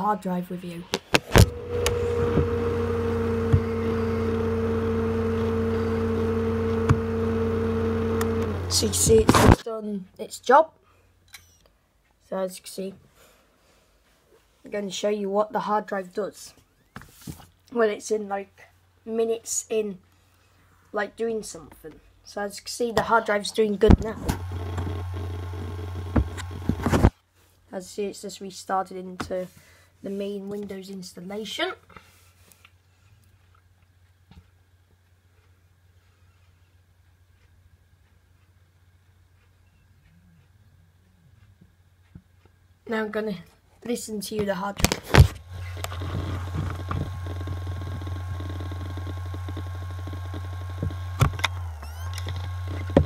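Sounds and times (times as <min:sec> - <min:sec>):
hard drive head ticking: 0:01.0 - 0:09.6, 0:23.9 - 0:27.1, 0:45.5 - 0:53.0
laptop humming: 0:01.0 - 0:09.6, 0:23.9 - 0:27.1, 0:45.1 - 0:53.0.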